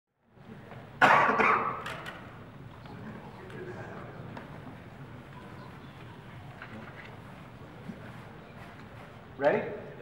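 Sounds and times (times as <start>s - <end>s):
person coughing: 1.0s - 1.8s.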